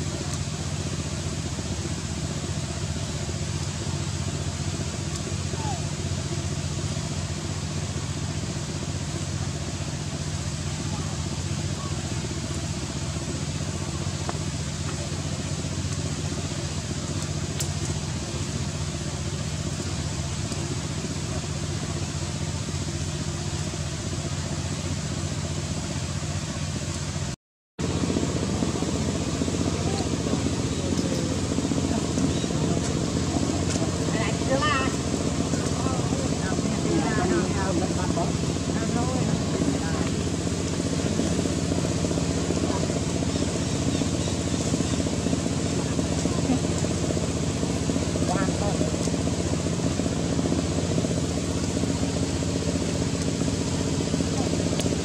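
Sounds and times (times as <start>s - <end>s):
low mechanical hum: 0.0s - 55.0s
outdoor background noise: 0.0s - 55.0s.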